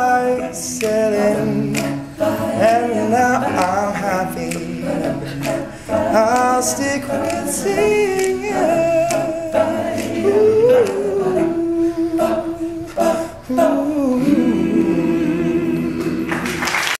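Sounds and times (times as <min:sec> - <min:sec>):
male a cappella group singing: 0:00.0 - 0:16.8.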